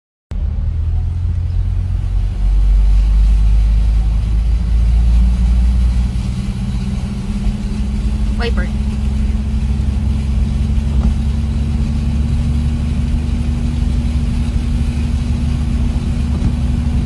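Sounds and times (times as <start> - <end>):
engine low rumble: 0.3 - 17.0.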